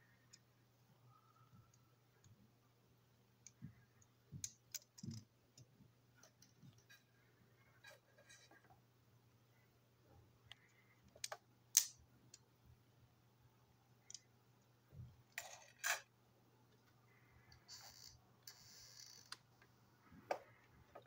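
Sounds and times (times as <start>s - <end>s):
plastic toy parts clicking: 4.4s - 6.6s, 11.1s - 12.4s.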